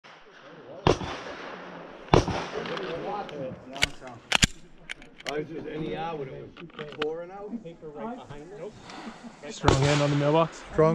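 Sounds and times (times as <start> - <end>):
sharp loud cracks: 0.0 - 5.3
murmur of voices: 0.1 - 10.9.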